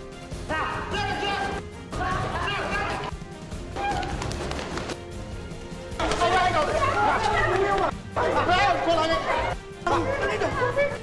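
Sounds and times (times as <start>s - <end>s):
background music: 0.0s - 11.0s
people talking over one another: 6.0s - 11.0s.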